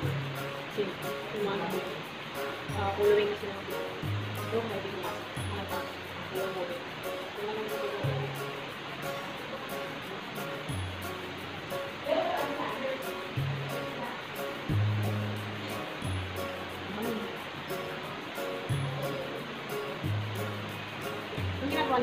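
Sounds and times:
held bass notes: 2.7 - 6.4, 14.6 - 22.0.

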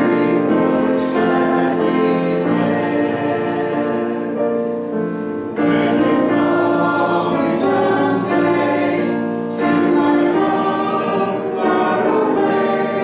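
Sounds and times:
congregation singing a hymn: 0.0 - 13.0
piano accompaniment: 0.0 - 13.0.

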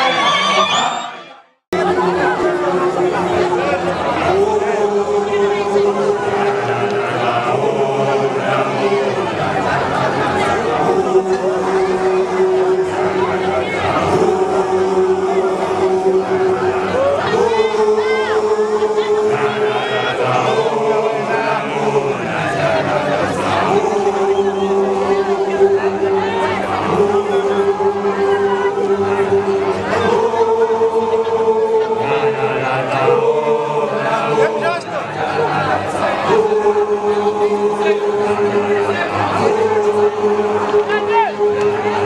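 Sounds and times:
group chanting a long note: 0.0 - 42.0
wavering voices: 0.0 - 42.0.

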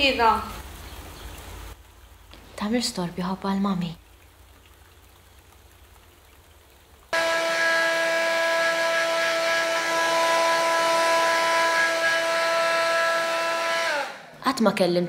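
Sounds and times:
appliance motor whining hum: 7.2 - 14.2.

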